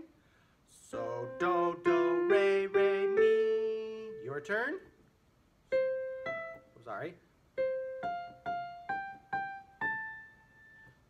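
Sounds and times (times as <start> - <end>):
piano notes stepping upward: 0.9 - 4.8, 5.7 - 11.0.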